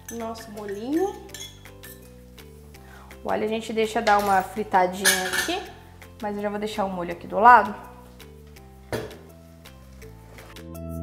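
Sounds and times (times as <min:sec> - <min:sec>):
spoon clinking on saucepan: 0:00.0 - 0:02.1, 0:04.1 - 0:05.7
soft background music: 0:00.0 - 0:11.0.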